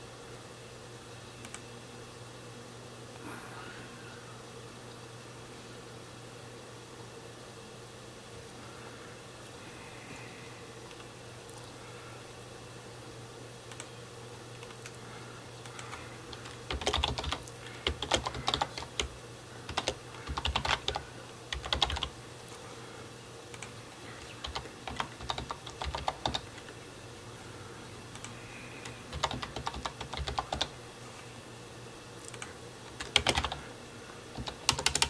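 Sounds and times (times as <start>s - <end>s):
faint low hum: 0.0s - 35.0s
typing on computer keyboard: 15.6s - 22.1s, 23.5s - 26.8s, 28.2s - 30.7s, 32.2s - 33.6s, 34.3s - 35.0s.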